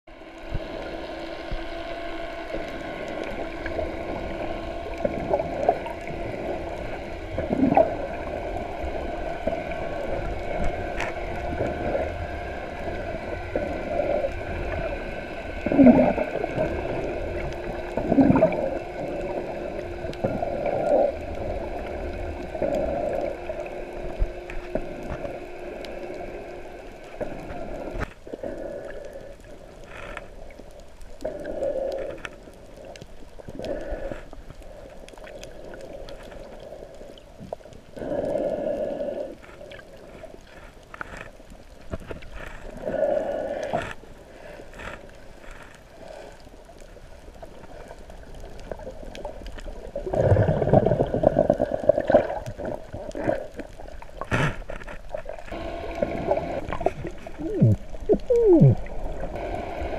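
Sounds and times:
low underwater hum: 0.1 - 59.9
bubbles gurgling from snorkel: 0.3 - 28.7, 46.0 - 59.9.

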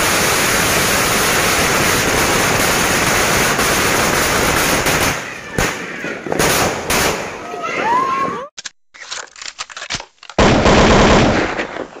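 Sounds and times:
firecrackers banging: 0.0 - 8.0, 11.0 - 12.0.

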